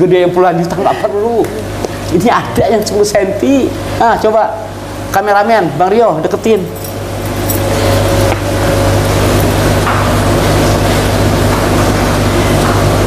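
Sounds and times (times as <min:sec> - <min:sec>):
aquarium pump humming: 0:00.0 - 0:13.0.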